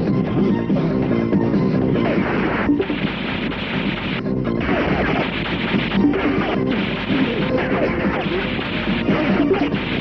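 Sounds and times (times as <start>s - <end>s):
loud action film score: 0.0s - 10.0s.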